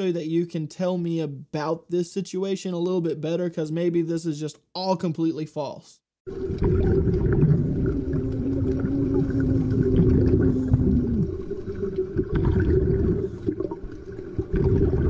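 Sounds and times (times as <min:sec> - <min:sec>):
low underwater rumble: 0:06.3 - 0:15.0
low drawn-out tone bending down: 0:06.6 - 0:13.4.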